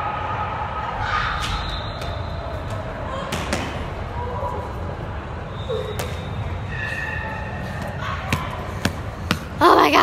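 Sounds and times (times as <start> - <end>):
indoor sports hall din: 0.0 - 10.0.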